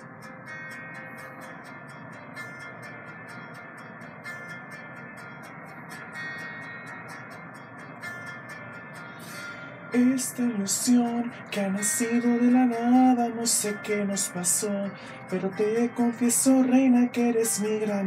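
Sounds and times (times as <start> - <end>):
acoustic guitar chords: 0.0 - 18.0.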